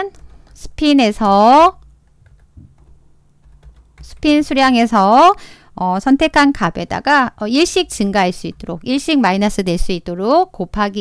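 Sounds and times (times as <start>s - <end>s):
faint keyboard typing: 0.0s - 5.0s, 8.0s - 9.0s.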